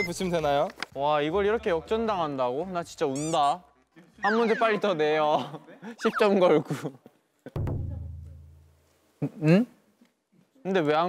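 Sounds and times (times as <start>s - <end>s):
low drum-like booming hit: 7.6s - 8.7s.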